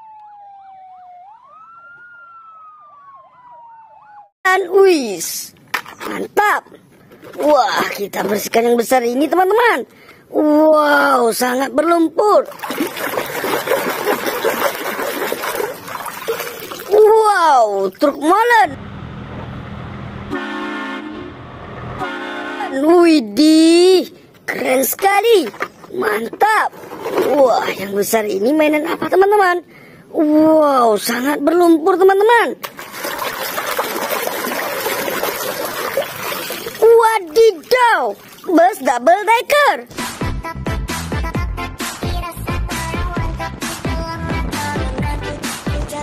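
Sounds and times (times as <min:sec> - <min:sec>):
water splashing: 0:12.4 - 0:18.2, 0:32.6 - 0:39.0.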